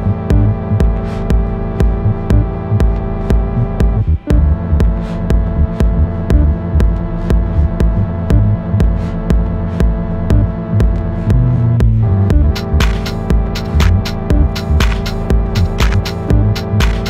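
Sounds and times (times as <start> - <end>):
minimal techno music: 0.0 - 17.0.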